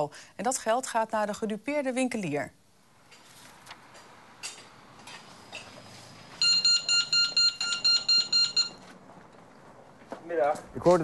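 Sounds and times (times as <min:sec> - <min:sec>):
security gate alarm beeping: 0:06.3 - 0:08.9.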